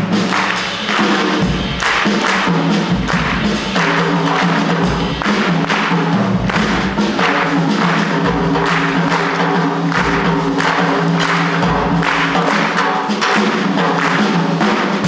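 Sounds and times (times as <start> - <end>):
hand claps: 0.0 - 15.0.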